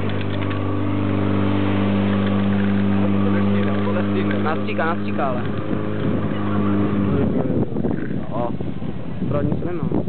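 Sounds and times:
pump engine running at high revs: 0:00.0 - 0:10.0.

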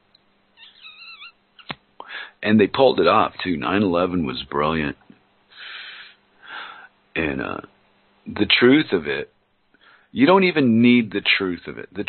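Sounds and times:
wavering high-pitched call: 0:00.6 - 0:01.7.

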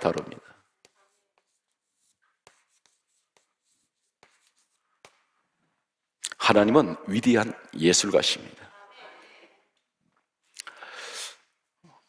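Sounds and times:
chalk tapping and scratching: 0:00.0 - 0:05.9.

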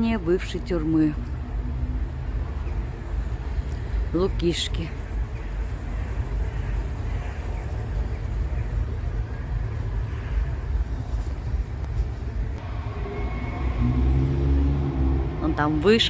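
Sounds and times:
city traffic rumble: 0:00.0 - 0:16.0.

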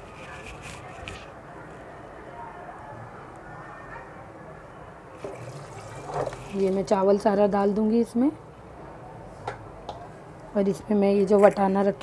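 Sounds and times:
wet rice pouring: 0:05.2 - 0:06.8
broth bubbling in a pot: 0:05.2 - 0:07.0.

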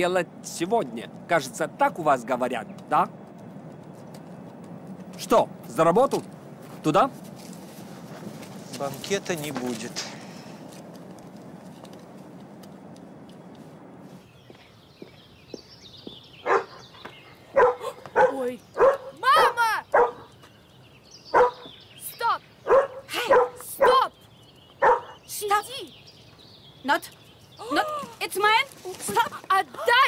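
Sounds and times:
dog barking: 0:16.4 - 0:16.9, 0:17.5 - 0:20.3, 0:21.3 - 0:21.7, 0:22.6 - 0:24.1, 0:24.8 - 0:25.2.

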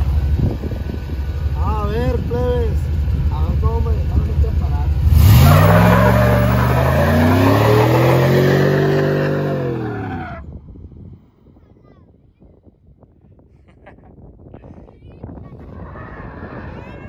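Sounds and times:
pickup engine idling and revving: 0:00.0 - 0:10.5
tires spinning: 0:03.1 - 0:10.6.

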